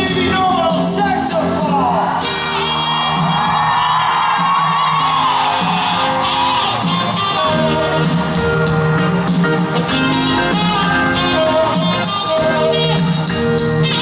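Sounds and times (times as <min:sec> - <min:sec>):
live pop band playing: 0:00.0 - 0:14.0
saxophone solo: 0:02.2 - 0:14.0.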